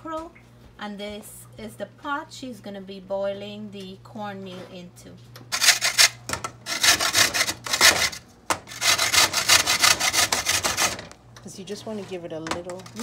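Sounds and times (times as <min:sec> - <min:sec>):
food grated on metal grater: 0:05.6 - 0:11.1.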